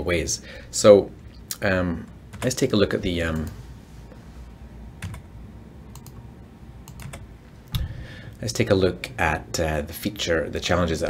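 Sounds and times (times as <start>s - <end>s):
low room hum: 0.0s - 11.0s
computer keyboard keystrokes: 5.0s - 5.2s, 5.9s - 6.2s, 6.8s - 7.9s.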